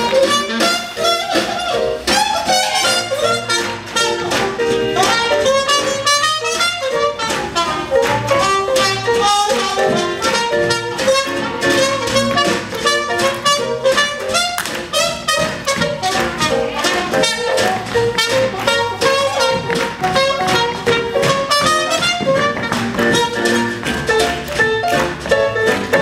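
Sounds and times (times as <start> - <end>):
swing jazz band playing: 0.0 - 26.0.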